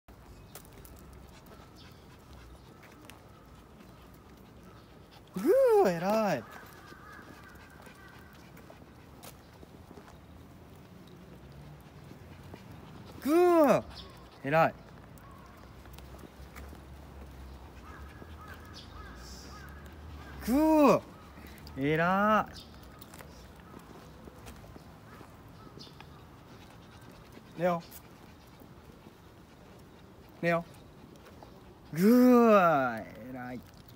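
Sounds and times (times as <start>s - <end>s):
footsteps on brick paving: 0.1s - 5.8s, 6.4s - 21.7s, 22.6s - 32.3s
faint bird calls: 0.3s - 11.9s, 12.5s - 16.8s, 17.4s - 21.7s, 22.6s - 32.4s.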